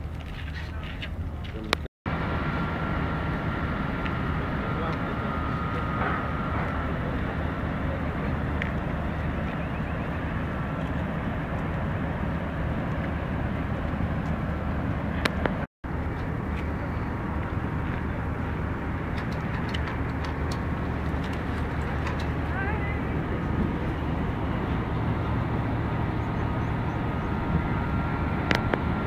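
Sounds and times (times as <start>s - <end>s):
distant road traffic rumble: 0.0s - 29.0s.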